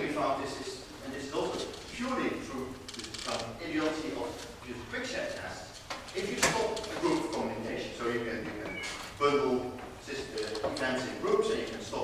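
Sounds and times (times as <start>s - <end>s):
man giving a lecture: 0.0s - 12.0s.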